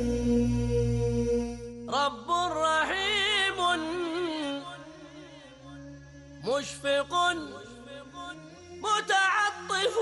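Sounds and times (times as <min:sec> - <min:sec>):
vocal chant: 0:00.0 - 0:10.0.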